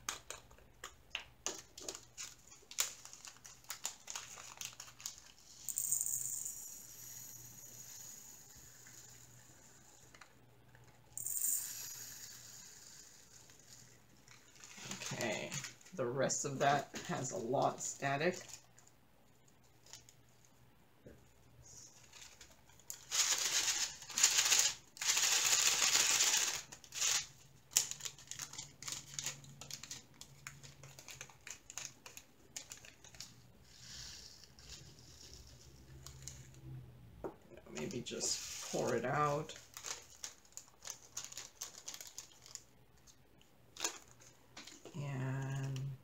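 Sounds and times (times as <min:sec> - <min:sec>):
plastic bag crinkling: 0:01.4 - 0:05.6, 0:13.1 - 0:16.0, 0:16.6 - 0:18.9, 0:21.9 - 0:33.5, 0:37.8 - 0:44.9.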